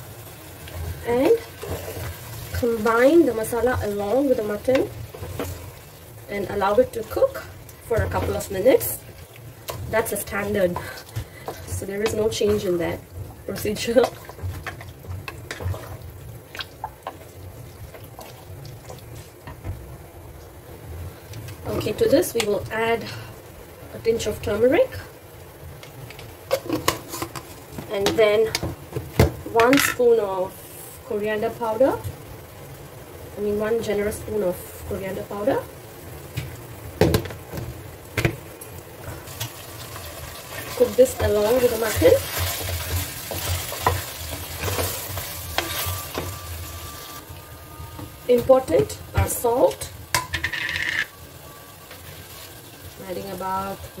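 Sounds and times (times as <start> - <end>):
meat frying in a pan: 0.0 - 54.0
wet stirring in thick sauce: 0.8 - 19.4, 39.3 - 46.9
spatula scraping and knocking pan: 6.8 - 9.0, 9.7 - 13.0, 40.5 - 47.0.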